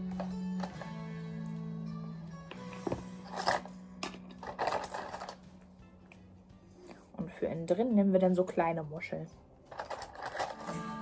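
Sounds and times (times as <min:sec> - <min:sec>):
seashells clinking and rattling: 0:03.3 - 0:05.5, 0:09.7 - 0:10.8.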